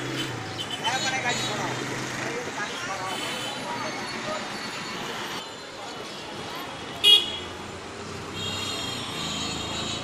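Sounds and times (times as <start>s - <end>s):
street noise: 0.0s - 10.0s.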